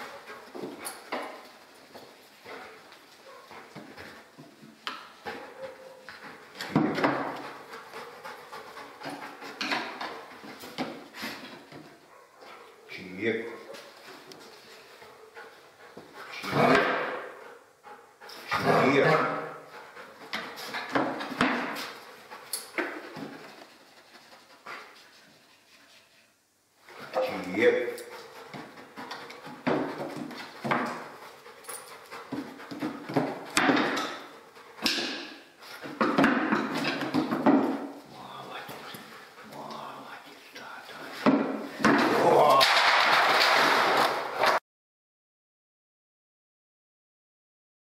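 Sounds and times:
dog panting: 0.0s - 12.9s, 13.6s - 41.7s
knocks on wooden boxes: 6.7s - 7.4s.

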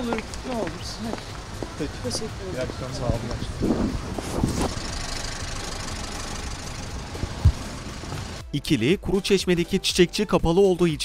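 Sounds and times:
street traffic noise: 0.0s - 8.5s
vehicle engine running nearby: 0.3s - 8.4s
sharp thump: 7.3s - 7.8s.

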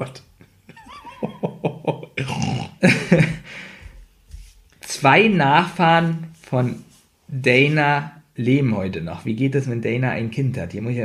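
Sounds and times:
man laughing: 0.7s - 3.6s.

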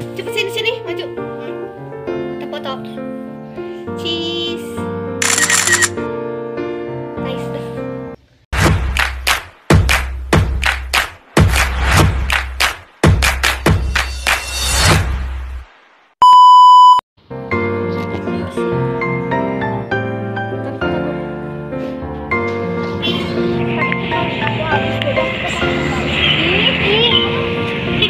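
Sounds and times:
background music: 0.0s - 5.2s, 17.2s - 28.0s
camera shutter click: 5.2s - 6.0s
electronic beep tone: 16.2s - 17.0s.

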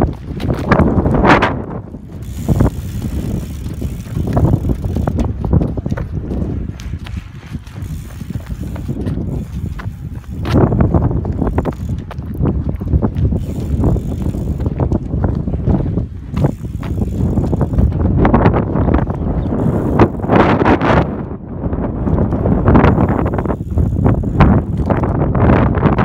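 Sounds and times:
bicycle riding on asphalt: 0.0s - 26.0s
wind rumbling on microphone: 0.0s - 26.0s.

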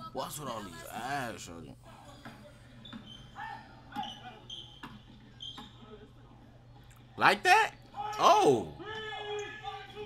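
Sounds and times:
sneaker squeaks: 2.2s - 6.0s.

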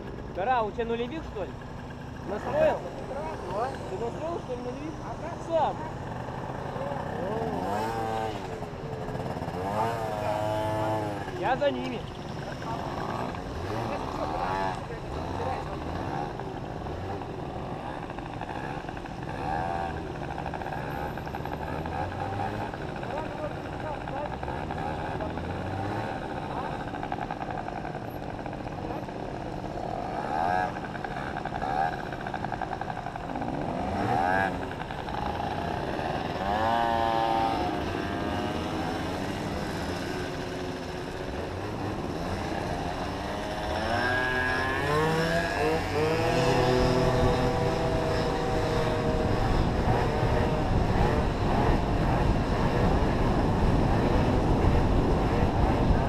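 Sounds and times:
motorcycle engine revving: 0.0s - 56.0s
motorcycle engines idling: 0.0s - 56.0s.

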